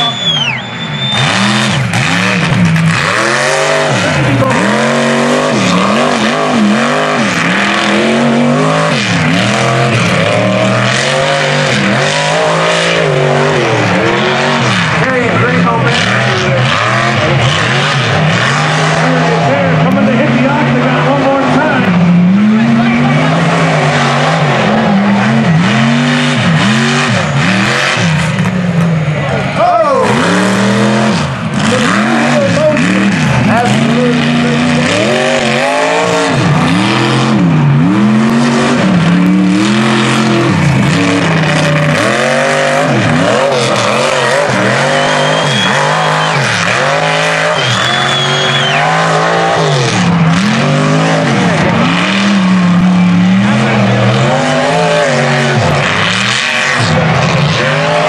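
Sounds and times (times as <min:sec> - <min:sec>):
truck engine revving hard: 0:00.0 - 0:58.0.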